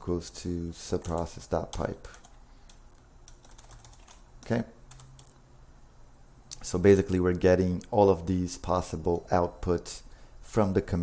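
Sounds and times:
keyboard keystrokes: 0:01.0 - 0:05.4.

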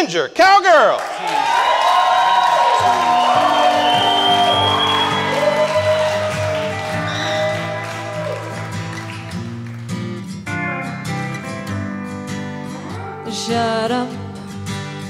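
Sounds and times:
acoustic guitar strumming: 0:02.7 - 0:15.0
pedal steel guitar: 0:02.8 - 0:15.0.

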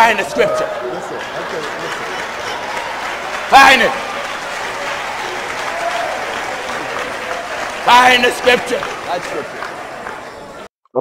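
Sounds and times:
audience applauding: 0:00.0 - 0:10.7.

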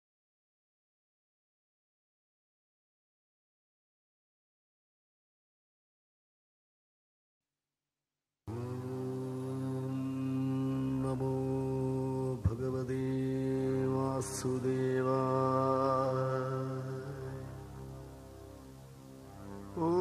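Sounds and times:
steady drone: 0:08.5 - 0:20.0
voice chanting long held notes: 0:08.5 - 0:20.0.

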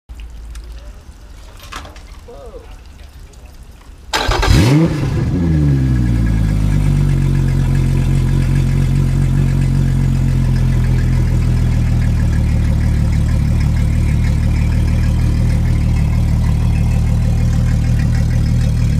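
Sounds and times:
outboard motor idling: 0:04.1 - 0:18.9.

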